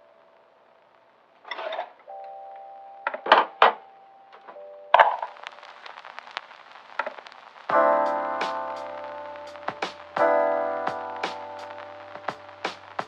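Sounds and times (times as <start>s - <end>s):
crackling clicks: 0.0s - 13.0s
chime-like keyboard notes: 2.1s - 5.4s.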